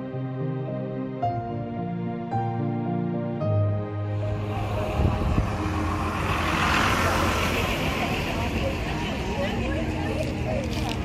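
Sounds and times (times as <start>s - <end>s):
vehicle passing by: 4.2s - 11.0s.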